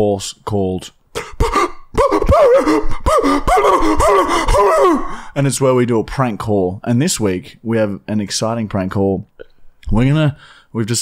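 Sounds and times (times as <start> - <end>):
man's high wavering vocal sound: 1.9 - 5.2.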